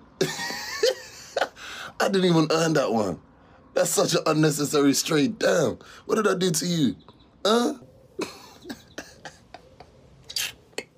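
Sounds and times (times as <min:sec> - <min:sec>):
man chuckling softly: 0:00.2 - 0:01.7, 0:08.2 - 0:10.9.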